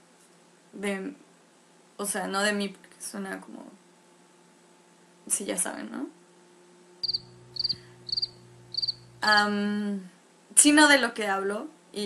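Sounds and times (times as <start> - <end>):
faint low hum: 5.2 - 12.0
cricket chirping: 7.0 - 9.4.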